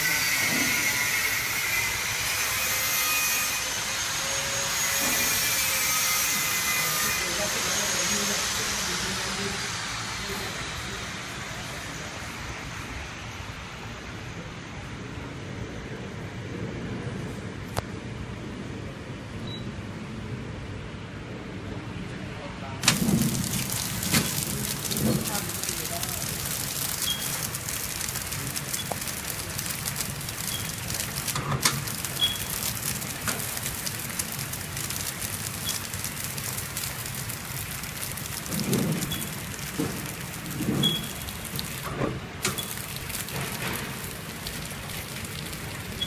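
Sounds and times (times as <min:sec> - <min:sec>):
packing machine running: 0:22.8 - 0:46.0.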